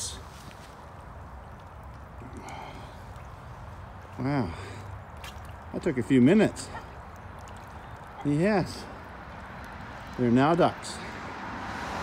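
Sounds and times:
faint water sounds: 0:00.0 - 0:12.0.

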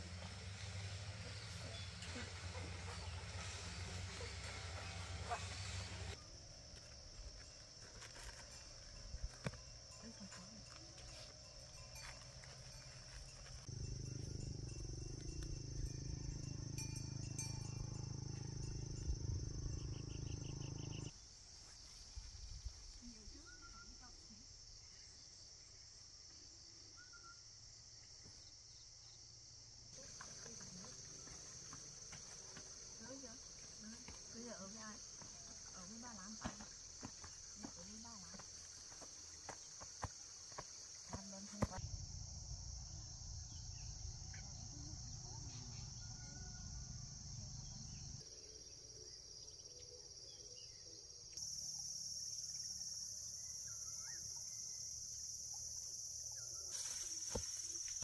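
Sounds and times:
insects droning: 0:00.0 - 0:58.0.

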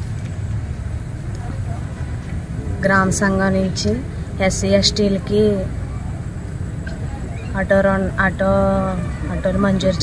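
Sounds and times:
low rumble of outdoor background: 0:00.0 - 0:10.0.

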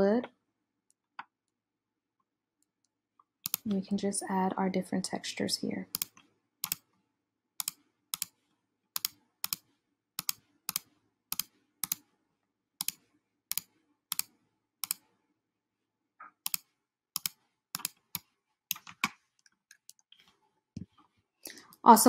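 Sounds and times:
computer mouse clicking: 0:03.4 - 0:03.8, 0:05.9 - 0:06.9, 0:07.6 - 0:08.4, 0:09.0 - 0:12.1, 0:12.8 - 0:15.1, 0:16.2 - 0:20.3.

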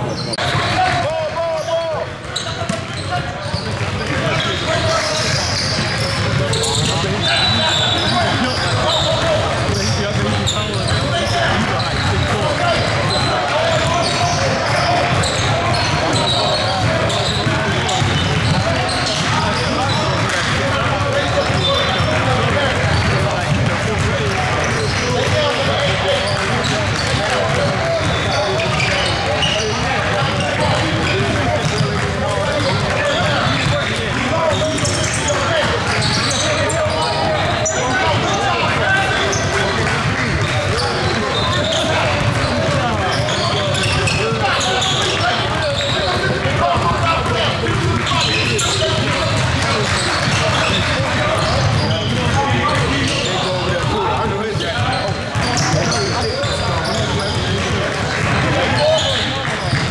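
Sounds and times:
voices talking: 0:00.0 - 0:59.9
basketballs bouncing on hardwood: 0:02.2 - 0:07.3, 0:08.0 - 0:59.9.

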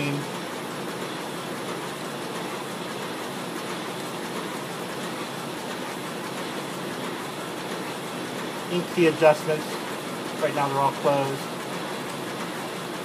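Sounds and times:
printing press whirring: 0:00.0 - 0:13.0.

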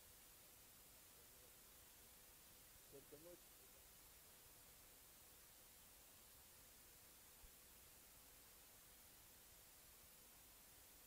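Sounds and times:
tape hiss: 0:00.0 - 0:11.0.

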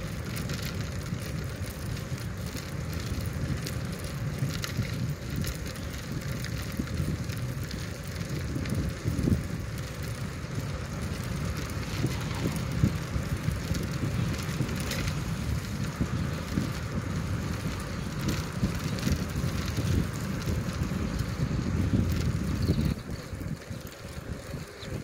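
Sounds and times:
wind rumble on microphone: 0:00.0 - 0:25.0.

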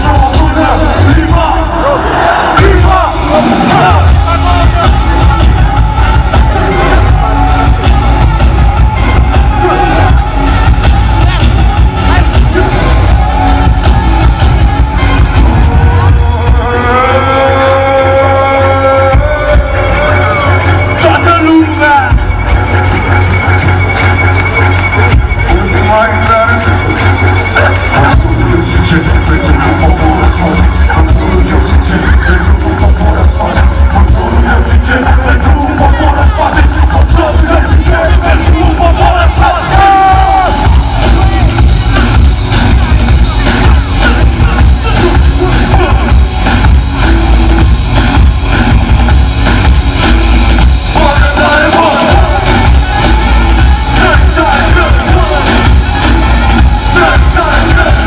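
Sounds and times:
vocals: 0:00.0 - 0:22.3, 0:24.5 - 0:58.0
live band with heavy bass beat: 0:00.0 - 0:58.0.

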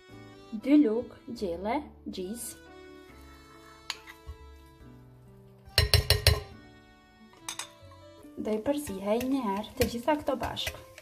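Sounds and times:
soft background music: 0:00.0 - 0:11.0
metal spoon tapping a bowl: 0:05.8 - 0:06.6, 0:07.5 - 0:07.8, 0:08.8 - 0:11.0.

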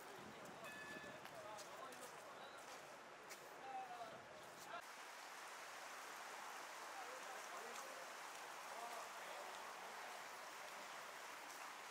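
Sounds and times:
faint outdoor background hiss: 0:00.0 - 0:11.9.

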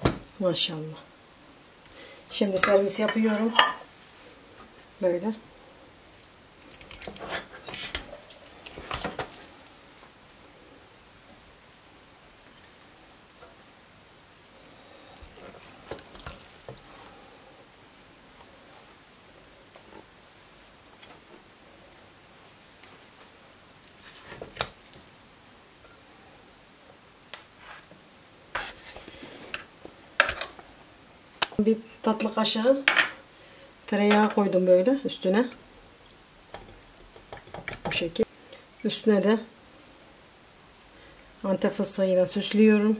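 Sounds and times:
low steady hiss: 0:00.0 - 0:42.9
wooden spoon scraping metal pot: 0:28.6 - 0:29.6.

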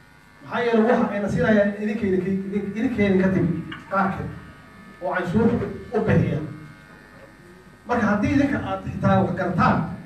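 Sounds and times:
steady electrical buzz: 0:00.0 - 0:10.0
man speaking: 0:00.4 - 0:04.4, 0:05.0 - 0:06.6, 0:07.9 - 0:10.0.

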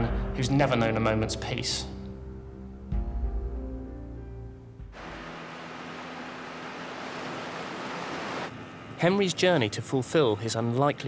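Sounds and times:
seawater rushing and foaming: 0:05.0 - 0:08.5.

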